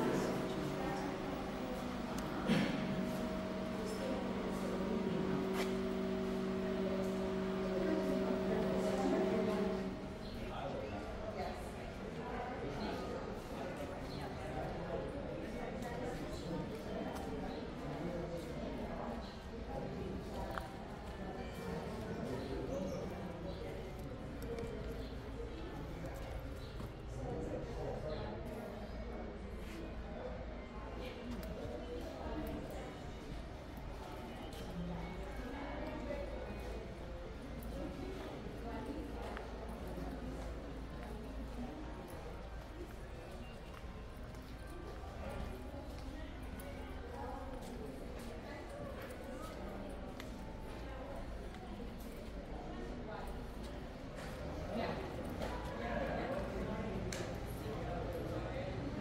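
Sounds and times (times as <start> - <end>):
background chatter: 0.0 - 59.0.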